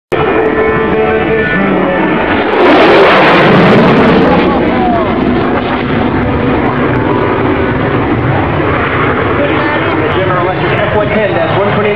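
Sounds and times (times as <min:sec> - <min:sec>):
jet engine passing overhead: 0:00.1 - 0:11.9.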